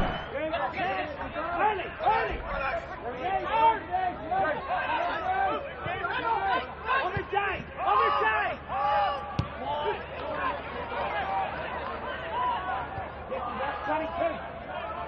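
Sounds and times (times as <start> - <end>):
sharp knock: 0.0 - 0.3.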